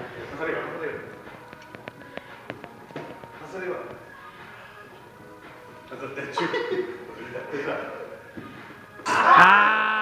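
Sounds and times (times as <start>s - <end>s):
man's drawn-out vocal cry: 9.1s - 10.0s.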